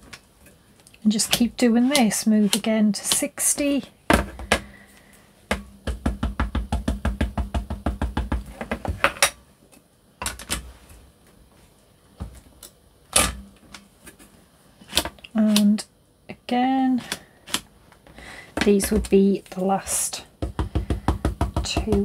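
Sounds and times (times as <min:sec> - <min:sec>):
ink pad tapping on stamps: 0:20.4 - 0:22.0.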